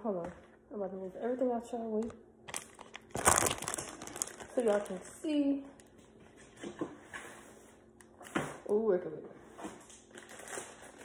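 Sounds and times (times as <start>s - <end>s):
plastic bag crinkling: 2.5s - 6.0s, 10.1s - 11.0s.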